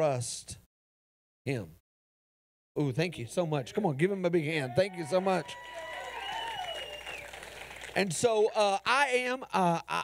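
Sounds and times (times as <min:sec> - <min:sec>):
crowd clapping: 0:04.9 - 0:08.3.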